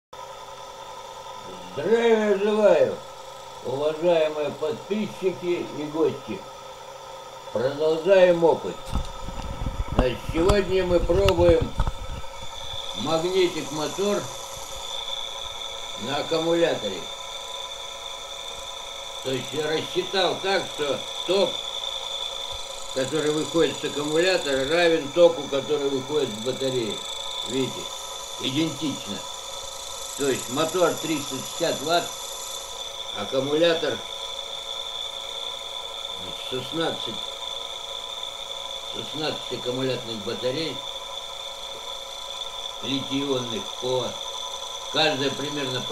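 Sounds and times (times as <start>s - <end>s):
electric motor whine: 0.2s - 45.9s.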